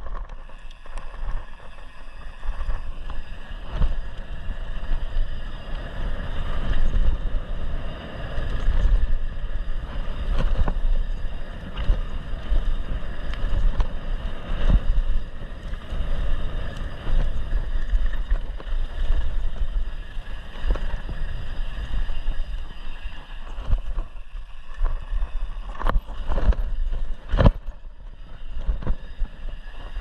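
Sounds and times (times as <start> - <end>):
bike knocking and rattling: 0.0 - 30.0
tyres humming on dirt: 0.0 - 30.0
wind buffeting microphone: 0.0 - 30.0.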